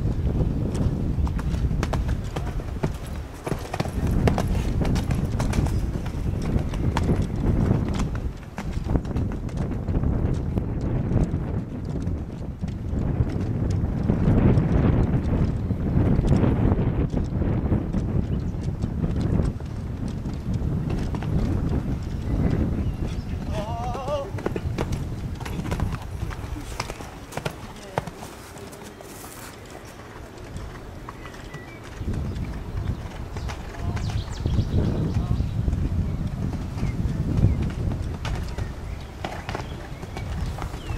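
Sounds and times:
horse cantering on sand: 0.0s - 40.9s.

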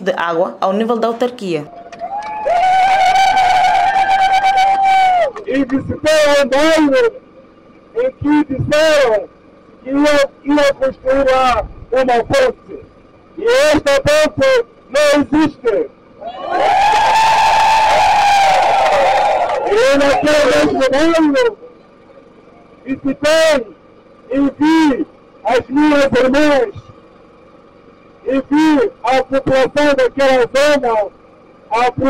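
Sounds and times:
crowd cheering and shouting: 1.7s - 5.5s, 16.2s - 21.5s
long held shout: 2.0s - 5.5s, 16.2s - 21.6s
high-pitched tone over loudspeaker: 19.7s - 21.7s.

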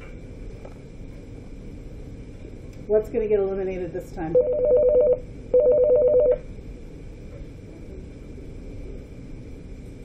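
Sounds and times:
desk telephone ringing: 4.4s - 6.4s.

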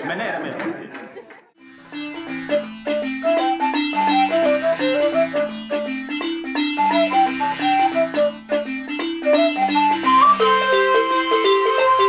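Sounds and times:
balafon notes: 1.9s - 12.0s
wooden flute high note: 2.5s - 12.0s.

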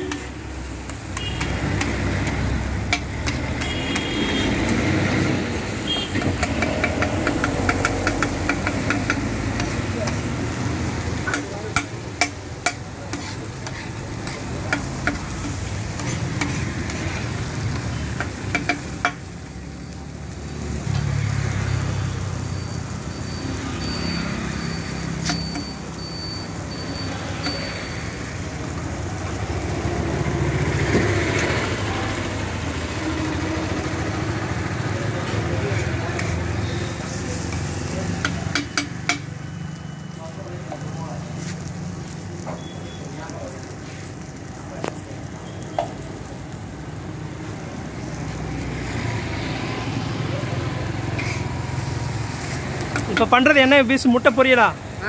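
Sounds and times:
vegetables sizzling: 0.0s - 55.0s
metal spatula clacking on griddle: 0.1s - 4.9s, 6.0s - 19.3s, 35.2s - 36.5s, 37.1s - 39.3s, 51.2s - 51.4s.

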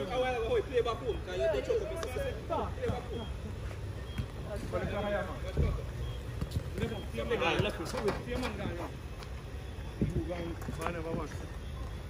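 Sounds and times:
men calling out: 0.0s - 6.1s.

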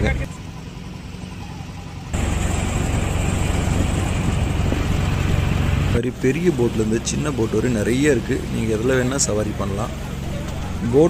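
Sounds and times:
boat motor humming: 0.0s - 11.0s.

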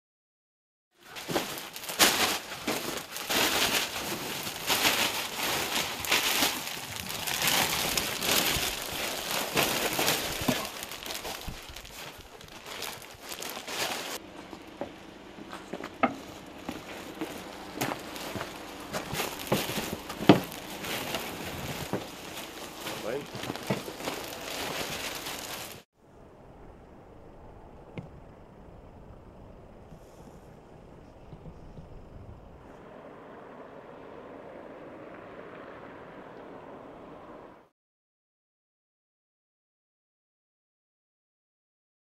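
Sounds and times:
plastic bags rustling and crinkling: 1.0s - 25.9s.

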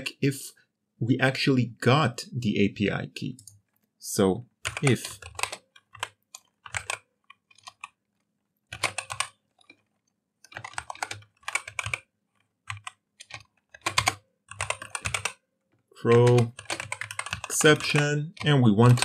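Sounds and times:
computer keyboard typing: 4.6s - 19.0s.

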